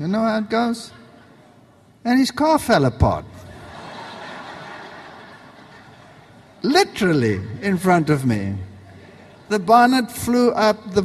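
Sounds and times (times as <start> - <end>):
audience laughter and murmur: 1.0 - 2.0, 3.3 - 6.7, 7.3 - 10.2.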